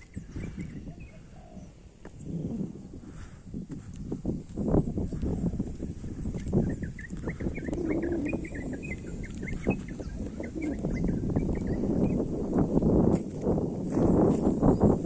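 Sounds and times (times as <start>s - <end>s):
bird chirping: 0.0s - 2.8s, 6.1s - 12.3s
footsteps on paved road: 1.7s - 15.0s.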